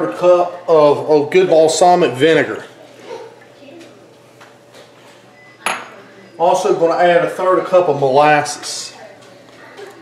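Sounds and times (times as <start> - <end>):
glass bowl clinking: 5.6 - 6.0.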